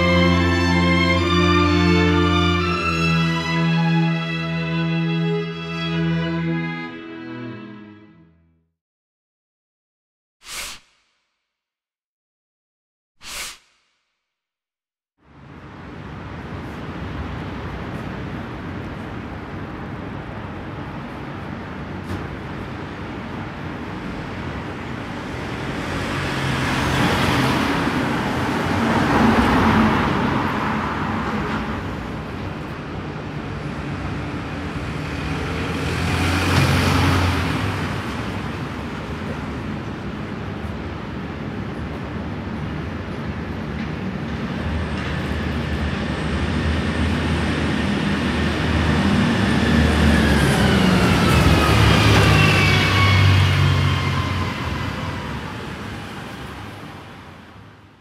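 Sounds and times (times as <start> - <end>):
vehicles passing: 15.3 - 57.7.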